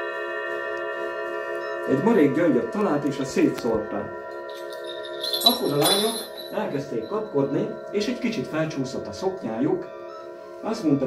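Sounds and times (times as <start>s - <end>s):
metal chime ringing: 4.3s - 8.6s.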